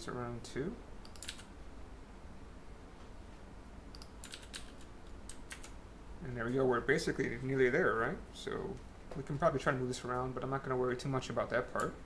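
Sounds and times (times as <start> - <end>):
keyboard keys clicking: 1.1 - 1.5, 3.9 - 5.8.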